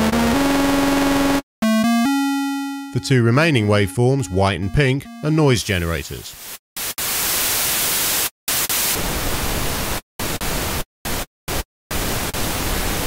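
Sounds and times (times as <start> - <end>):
synthesizer pink noise notes: 0.0 - 5.7.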